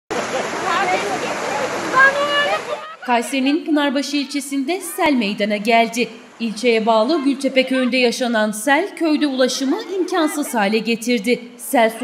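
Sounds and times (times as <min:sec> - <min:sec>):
floodwater rushing: 0:00.1 - 0:12.0
people calling out: 0:00.7 - 0:05.3, 0:06.6 - 0:10.9.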